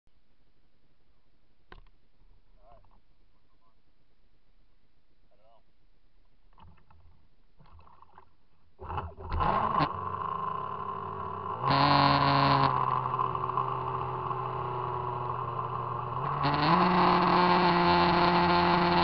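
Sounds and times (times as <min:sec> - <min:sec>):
water noise: 0:06.6 - 0:19.0
electric boat motor whine: 0:08.8 - 0:19.0.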